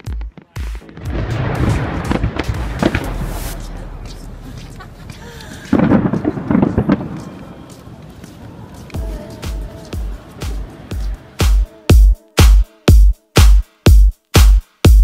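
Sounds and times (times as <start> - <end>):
fireworks bursting and crackling: 0.0 - 11.7.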